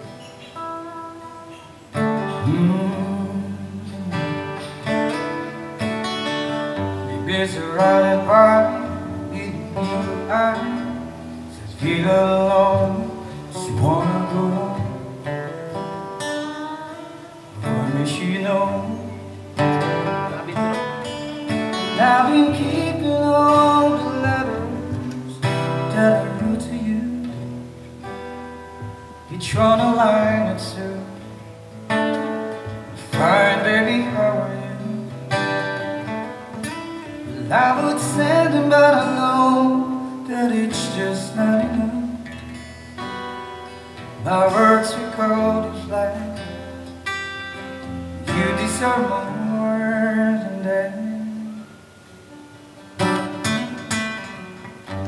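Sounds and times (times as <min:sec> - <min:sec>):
strummed acoustic guitar: 0:00.0 - 0:55.0
man singing into microphone: 0:02.2 - 0:04.8, 0:07.0 - 0:15.2, 0:17.6 - 0:20.8, 0:21.7 - 0:27.5, 0:29.3 - 0:31.4, 0:33.0 - 0:35.5, 0:37.3 - 0:42.3, 0:44.2 - 0:46.8, 0:48.2 - 0:51.8.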